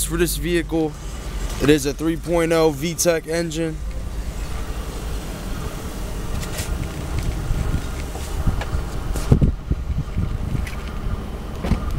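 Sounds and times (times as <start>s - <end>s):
wind buffeting microphone: 3.8s - 11.9s.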